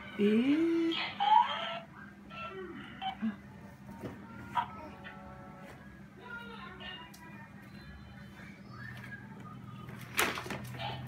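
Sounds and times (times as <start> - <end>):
toy playing squeaky voice: 1.0 - 2.6.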